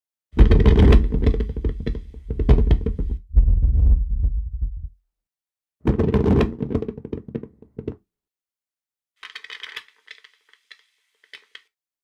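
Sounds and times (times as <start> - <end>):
deep low rumble: 3.0 - 5.0.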